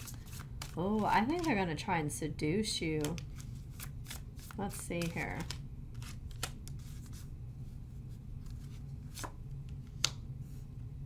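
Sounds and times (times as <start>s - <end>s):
cards shuffled by hand: 0.0s - 1.7s, 2.8s - 7.3s, 8.4s - 10.2s
steady low hum: 0.0s - 11.0s
card snaps and slaps: 5.0s - 6.8s, 9.2s - 10.2s.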